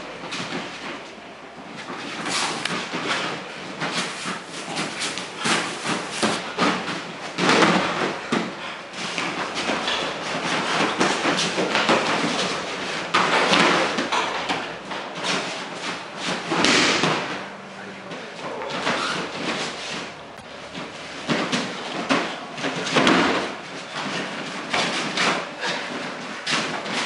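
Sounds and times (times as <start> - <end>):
rustling uniforms: 0.0 - 27.0
scuffling feet: 0.0 - 27.0
bodies thudding on a mat: 1.8 - 17.6, 18.6 - 27.0.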